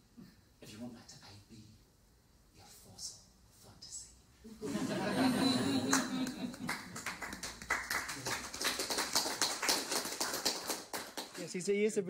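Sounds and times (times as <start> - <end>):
audience applauding: 5.5 - 11.5
voice: 11.4 - 12.0.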